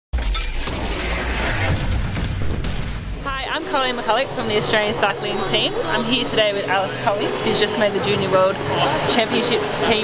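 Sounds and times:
crackling noise texture: 0.2s - 4.3s
heavy low bass rumble: 0.9s - 6.5s.

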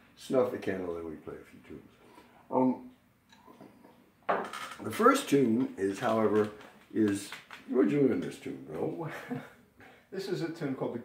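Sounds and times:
man speaking: 0.2s - 1.9s, 2.5s - 2.9s, 4.8s - 9.5s, 10.1s - 11.0s.

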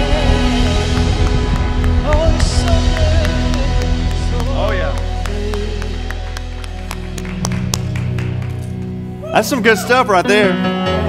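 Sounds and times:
worship band music: 0.0s - 11.0s
hand claps: 0.9s - 9.0s.

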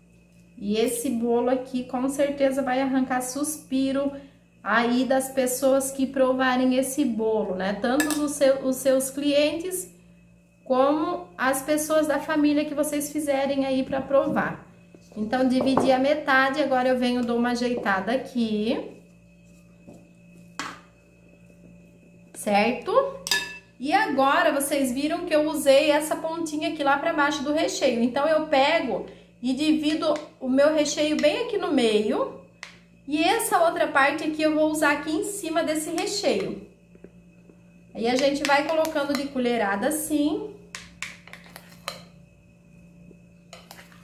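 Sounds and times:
faint steady hum: 0.0s - 44.0s
metal spoon knocking on pan: 8.0s - 8.3s, 23.2s - 23.6s
spoon clicking against glass bowl: 8.0s - 8.3s, 23.2s - 23.6s, 38.1s - 39.4s.

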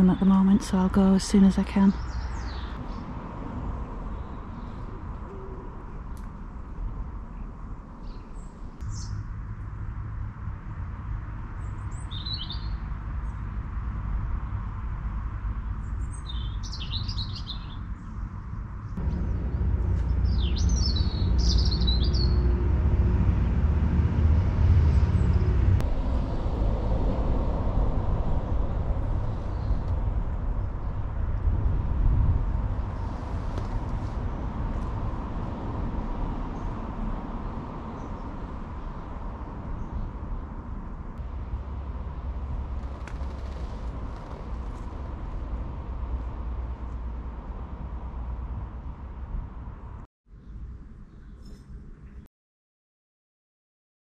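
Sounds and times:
small birds chirping: 1.2s - 3.0s, 11.6s - 13.4s, 15.8s - 18.4s, 20.0s - 22.4s
steady low rumble: 17.7s - 50.1s.

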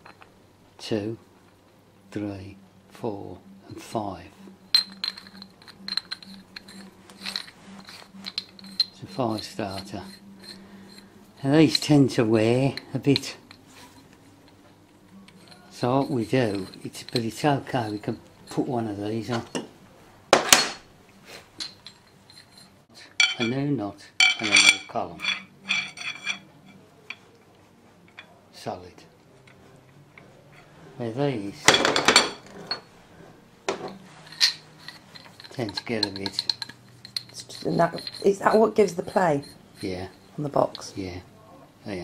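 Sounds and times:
faint steady hum: 0.0s - 42.0s
metallic clicks and scraping: 4.7s - 19.7s, 21.6s - 23.6s, 24.2s - 28.4s, 33.7s - 41.0s.

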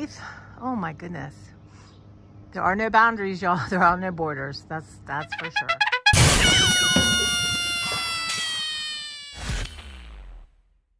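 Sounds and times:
sudden crash: 6.1s - 7.8s.

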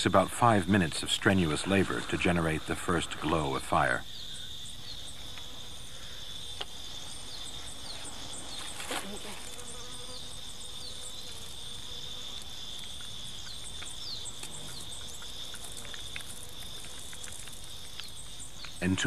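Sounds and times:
insects droning: 0.0s - 19.0s.

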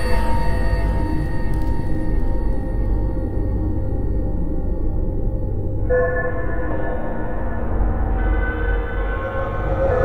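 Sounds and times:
dark ambient music: 0.0s - 10.0s.

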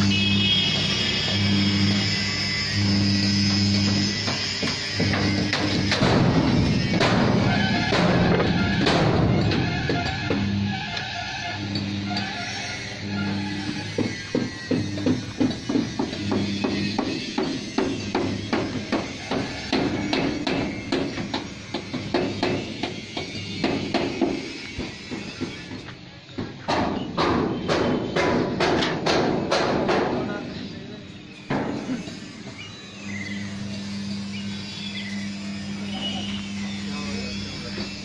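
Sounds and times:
hammer blows: 0.1s - 25.8s, 26.6s - 30.4s
bird chirps: 32.5s - 33.6s, 34.3s - 35.3s.

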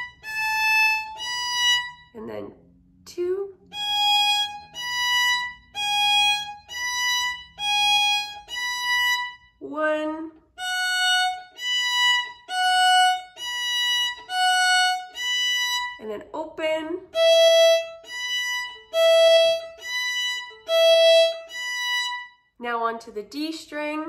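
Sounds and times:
bowed violin notes: 0.0s - 22.5s.

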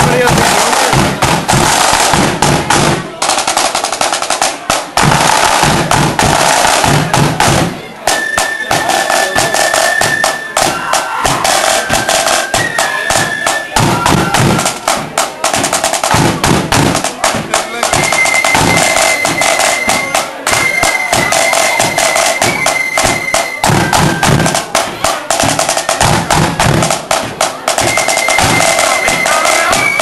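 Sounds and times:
bass drum beating: 0.0s - 3.2s, 4.5s - 7.9s, 13.8s - 18.0s, 23.6s - 28.6s
flute melody: 0.0s - 30.0s
marching flute band playing: 0.0s - 30.0s
snare drums rolling: 0.0s - 30.0s.

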